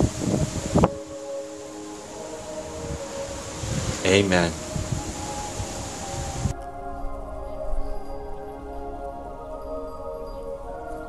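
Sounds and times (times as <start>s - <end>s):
outdoor hiss: 0.0s - 6.5s
background music of held notes: 0.0s - 11.0s
low rumbles: 2.1s - 9.6s.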